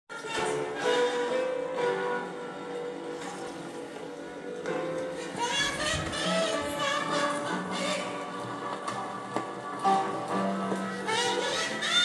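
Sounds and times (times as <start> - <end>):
weak music from radio: 0.1 - 12.0.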